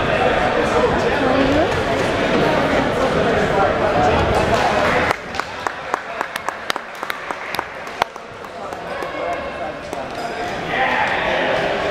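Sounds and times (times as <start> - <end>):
murmur of crowd voices: 0.0 - 11.9
scattered handclaps: 4.4 - 10.2.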